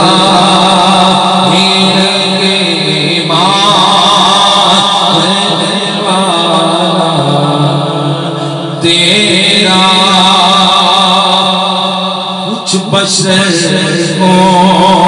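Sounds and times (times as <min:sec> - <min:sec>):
man singing into a microphone: 0:00.0 - 0:15.0.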